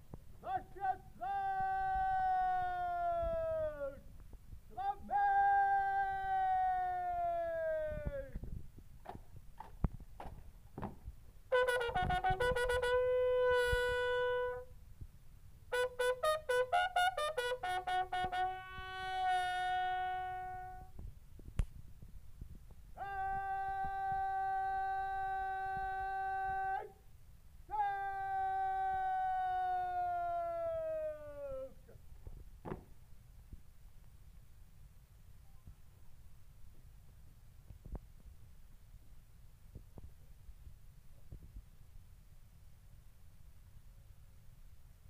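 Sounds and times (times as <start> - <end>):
bugle call: 11.5 - 14.7, 15.7 - 21.0.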